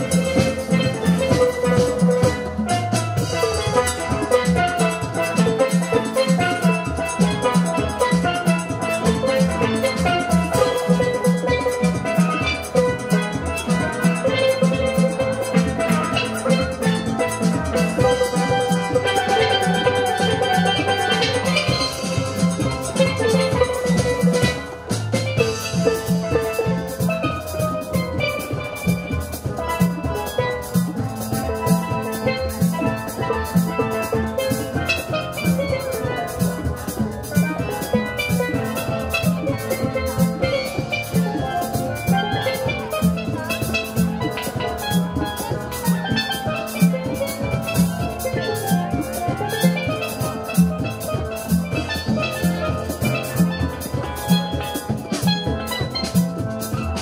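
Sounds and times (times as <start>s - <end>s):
steady drum beat: 0.0s - 57.0s
steel pan ensemble playing: 0.0s - 57.0s.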